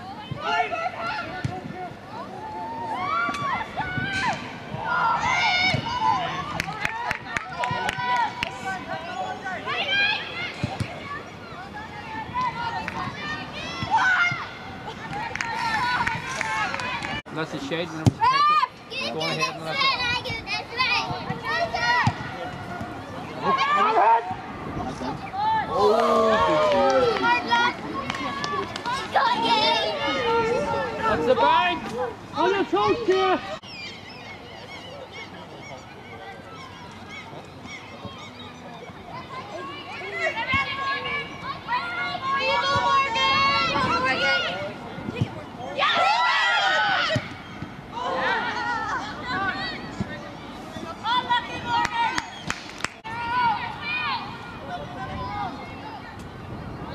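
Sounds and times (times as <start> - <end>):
players and spectators shouting: 17.9 - 33.6, 38.0 - 44.8, 45.6 - 52.3, 53.0 - 56.0
birds chirping: 33.6 - 39.3.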